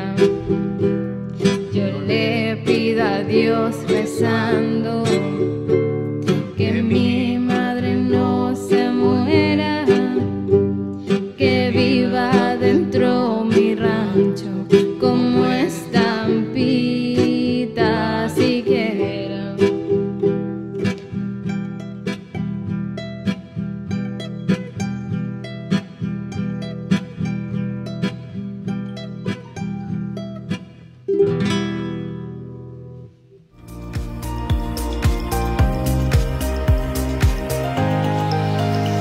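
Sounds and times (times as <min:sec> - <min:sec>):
ukulele and guitar ballad: 0:00.0 - 0:39.0.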